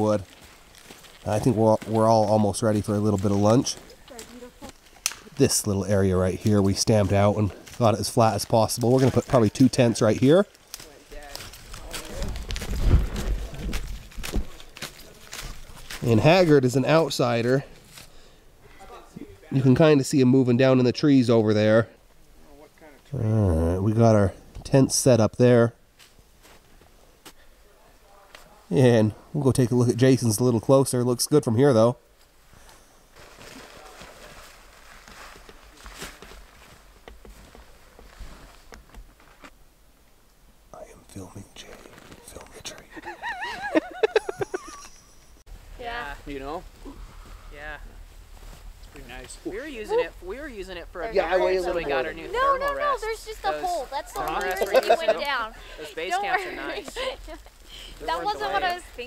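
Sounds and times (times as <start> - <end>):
footsteps crunching through snow: 0.1 - 5.4, 6.4 - 18.2, 32.2 - 39.5, 46.0 - 54.2.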